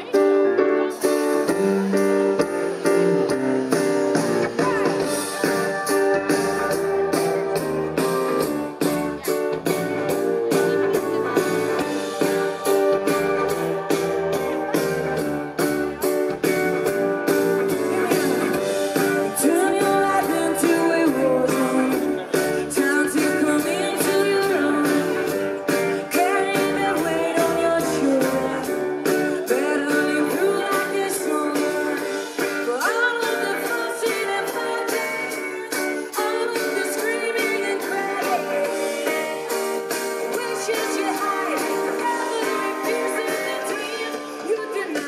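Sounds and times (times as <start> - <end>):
guitar and keyboard chords: 0.0 - 45.0
live pop-rock band: 0.0 - 45.0.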